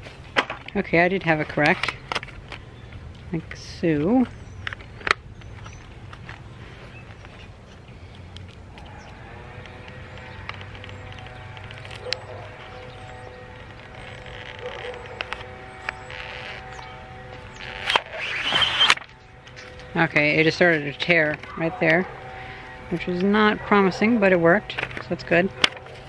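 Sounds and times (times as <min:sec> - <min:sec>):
faint music with held notes: 0:08.0 - 0:18.1
paper rasp tearing: 0:10.6 - 0:20.0.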